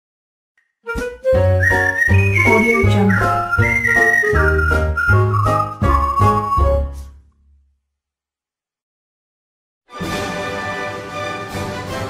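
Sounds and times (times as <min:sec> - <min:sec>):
whistle-like jingle melody: 0:00.9 - 0:07.0.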